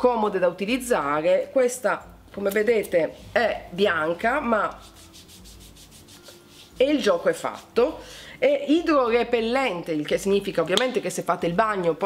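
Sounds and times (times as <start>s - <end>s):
palm swishing on skin: 4.3s - 8.0s.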